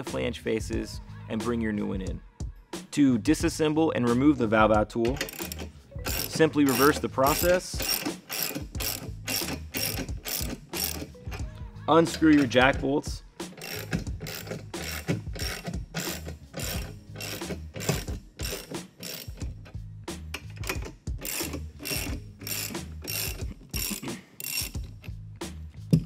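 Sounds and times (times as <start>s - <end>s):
ratchet wrench clicking: 5.0s - 11.4s, 13.5s - 19.7s, 20.4s - 25.2s.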